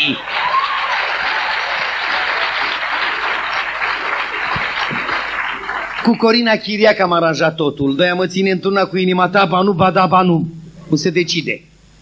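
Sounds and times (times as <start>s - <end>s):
audience applauding: 0.0s - 6.5s.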